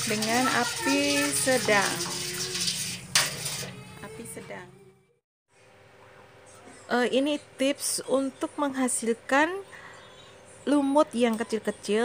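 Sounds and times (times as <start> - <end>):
whisk scraping metal pot: 0.0 - 3.8.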